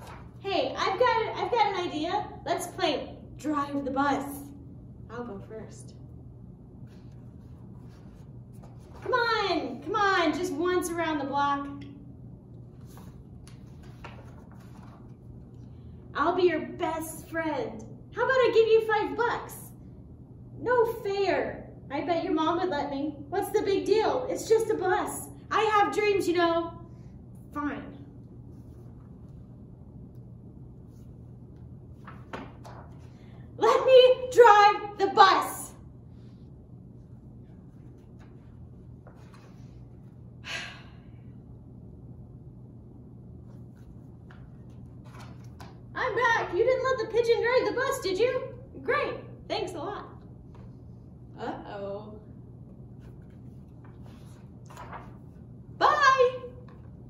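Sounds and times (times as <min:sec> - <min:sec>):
book pages turning: 0:00.0 - 0:00.4, 0:12.6 - 0:15.3, 0:30.8 - 0:33.1, 0:37.5 - 0:40.1, 0:43.5 - 0:45.8, 0:52.8 - 0:55.4
low room hum: 0:00.0 - 0:57.0.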